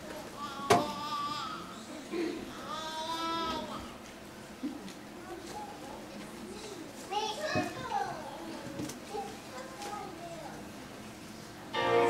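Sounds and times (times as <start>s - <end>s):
indistinct chatter in a hall: 0.0s - 12.0s
child's high-pitched voice: 5.2s - 10.7s.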